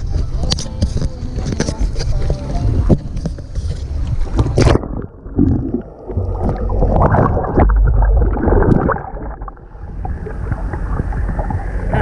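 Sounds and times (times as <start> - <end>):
wind on microphone: 0.0 - 12.0
underwater gurgling: 2.2 - 12.0.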